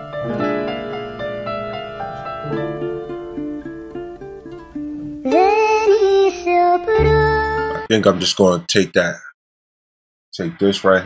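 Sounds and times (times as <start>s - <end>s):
gliding lead melody: 0.0s - 7.9s
plucked notes: 0.0s - 7.9s.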